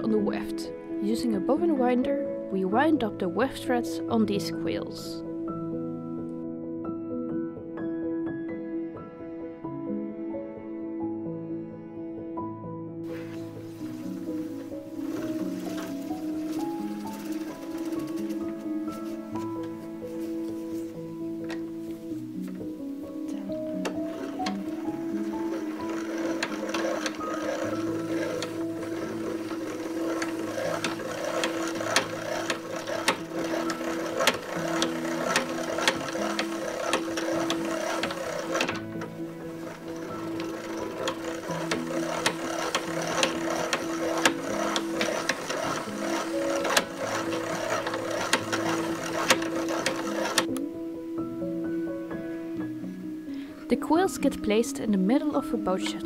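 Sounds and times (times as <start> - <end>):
background music: 0.0 - 56.0
bobbin winder whirring: 13.1 - 19.8, 23.4 - 50.6
rapid gear clicking: 15.1 - 18.4, 23.8 - 50.5.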